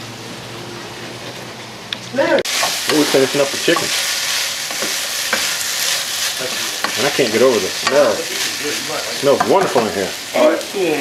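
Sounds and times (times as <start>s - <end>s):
food sizzling in a frying pan: 2.1s - 11.0s.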